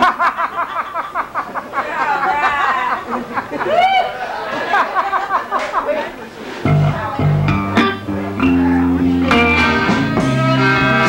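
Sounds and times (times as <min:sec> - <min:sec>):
voices and chatter: 0:01.4 - 0:11.0
band playing slow blues: 0:06.5 - 0:11.0.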